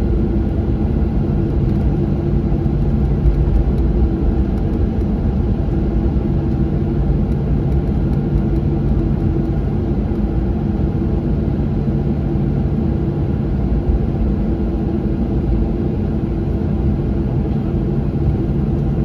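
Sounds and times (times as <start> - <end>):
low rumble of rolling airplane: 0.0 - 19.0.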